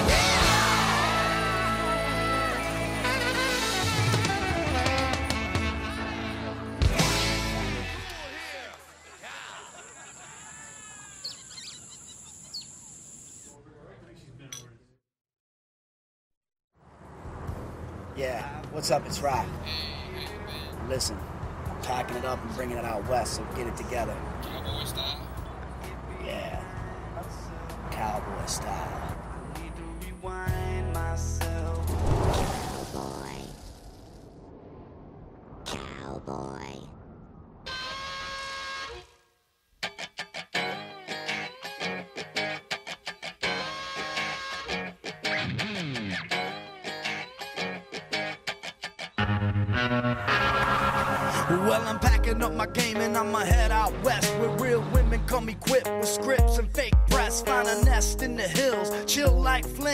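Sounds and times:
faint bird chirps: 10.6 - 13.6
steady horn-like tone: 37.7 - 39.4.

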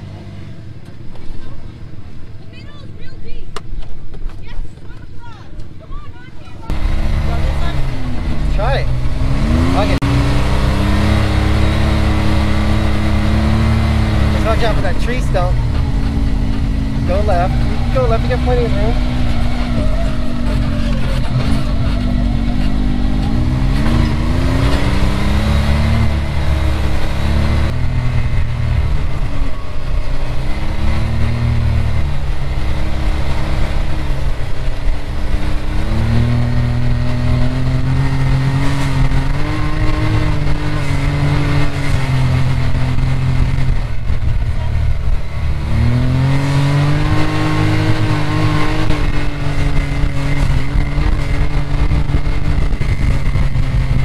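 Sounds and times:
off-road vehicle engine revving: 0.0 - 1.9, 6.6 - 54.0.

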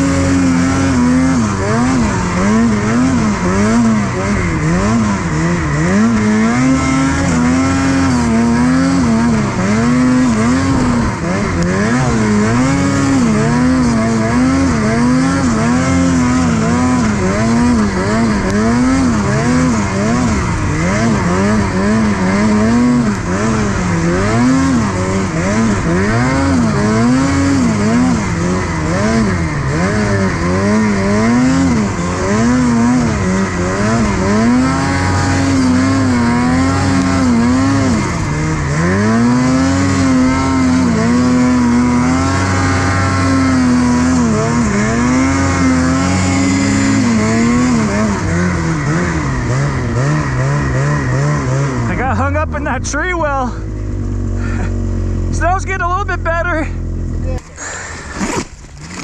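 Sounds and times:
snowmobile engine revving: 0.0 - 59.0.

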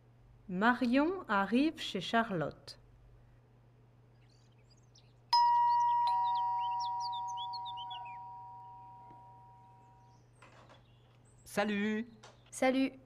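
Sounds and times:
birds chirping: 4.0 - 12.9
two-tone doorbell chime: 5.4 - 10.0.

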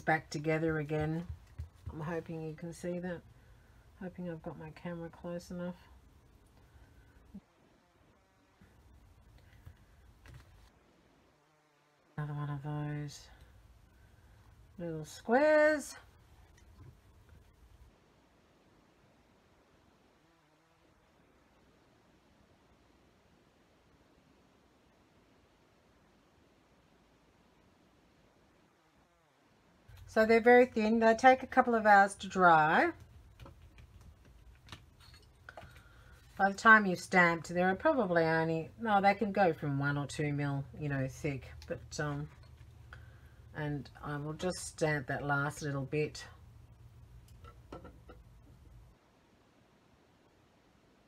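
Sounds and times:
faint low hum: 0.0 - 51.0.

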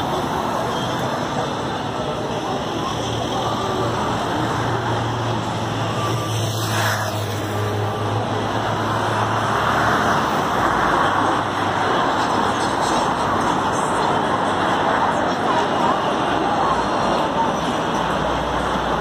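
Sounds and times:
vehicles passing: 0.0 - 19.0.

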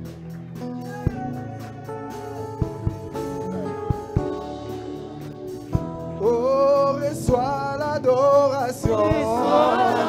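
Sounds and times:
deep drum beat: 2.6 - 10.0
gospel singing: 6.2 - 10.0.

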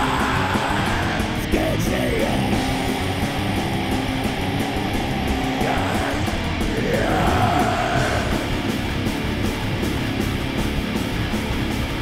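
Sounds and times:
death metal instrumental: 0.0 - 12.0.

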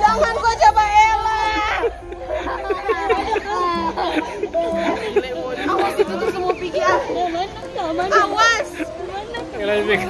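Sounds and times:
children talking and calling: 0.0 - 10.0.

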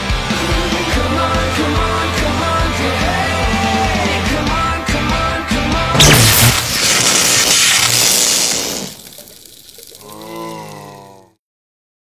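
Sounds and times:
cartoon electric zap: 6.0 - 10.4.

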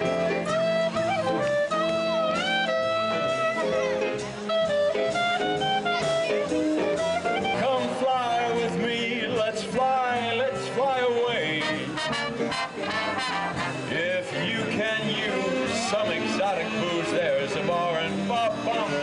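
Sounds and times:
big band swing music: 0.0 - 19.0.

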